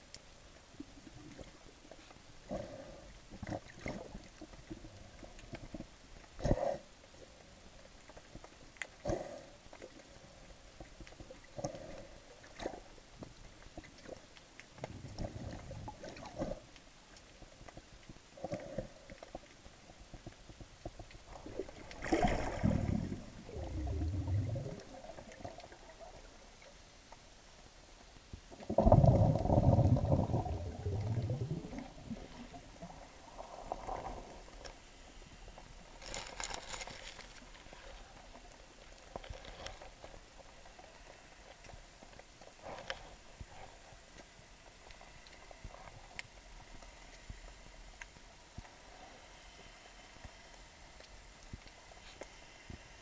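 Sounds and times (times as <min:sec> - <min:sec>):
underwater rumbling: 0:14.8 - 0:16.7, 0:19.8 - 0:26.8, 0:28.4 - 0:35.6
crackling bursts: 0:20.4 - 0:26.4
water and bubbles rushing: 0:21.1 - 0:26.6, 0:28.5 - 0:34.6.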